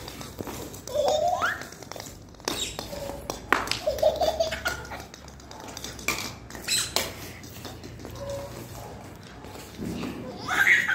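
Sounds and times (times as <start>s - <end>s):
toy bat and ball clattering on tiles: 0.0s - 10.9s.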